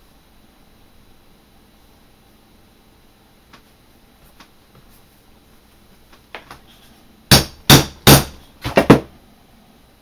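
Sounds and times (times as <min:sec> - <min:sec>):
hammer striking leather punch: 0:07.3 - 0:09.1.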